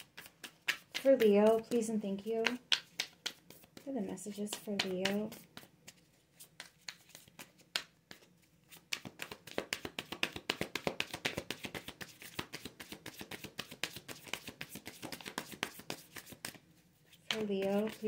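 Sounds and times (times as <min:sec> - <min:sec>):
cards being shuffled: 0:00.0 - 0:18.0.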